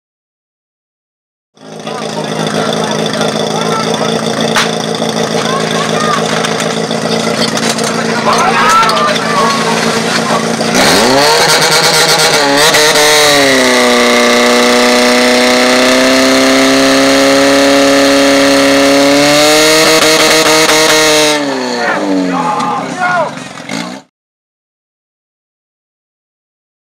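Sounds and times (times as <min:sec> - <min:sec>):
pump engine revving: 0:01.6 - 0:24.1
people shouting: 0:05.3 - 0:06.4, 0:08.1 - 0:12.3, 0:21.6 - 0:23.4.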